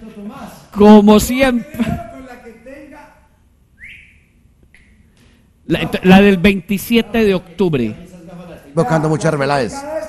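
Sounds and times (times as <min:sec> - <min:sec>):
faint whistled notes: 0:03.8 - 0:05.1.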